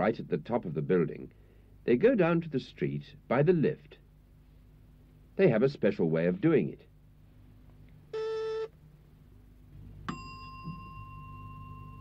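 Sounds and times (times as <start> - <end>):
lift call button buzzer: 8.2 - 8.7
lift bell ding: 10.1 - 12.0.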